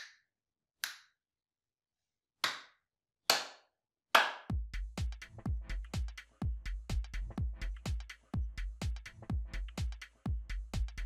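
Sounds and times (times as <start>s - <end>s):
hand claps with room echo: 0.0s - 0.2s, 0.8s - 1.2s, 2.4s - 7.2s, 7.8s - 9.2s.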